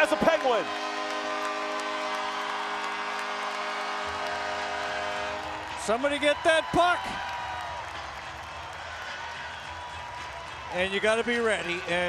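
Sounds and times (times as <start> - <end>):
goal horn chord: 0.0 - 6.0.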